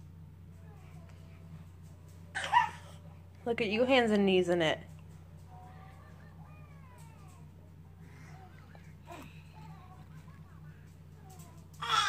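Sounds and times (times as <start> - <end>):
steady low hum: 0.0 - 12.0
baby babbling and cooing: 5.6 - 10.3, 11.2 - 12.0.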